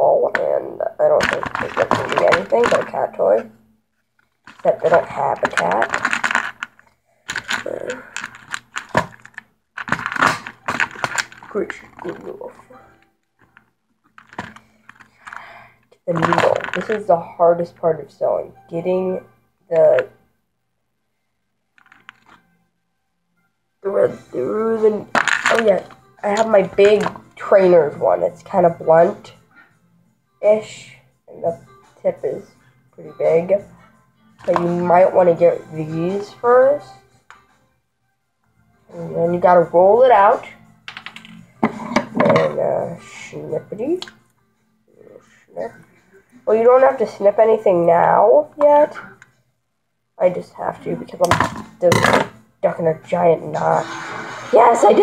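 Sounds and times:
hands handling small objects: 0:01.2 - 0:03.0, 0:04.2 - 0:12.4, 0:13.4 - 0:15.5, 0:16.1 - 0:17.1, 0:21.8 - 0:22.5, 0:25.1 - 0:27.2.

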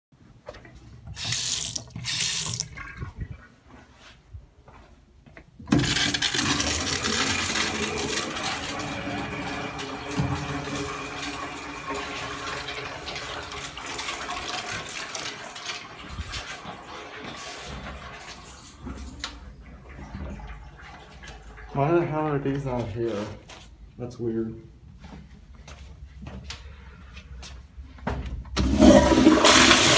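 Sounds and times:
sink faucet running: 0:01.1 - 0:02.7, 0:05.8 - 0:18.8
urinal flushing: 0:01.1 - 0:03.4, 0:05.7 - 0:23.0, 0:28.6 - 0:29.9.

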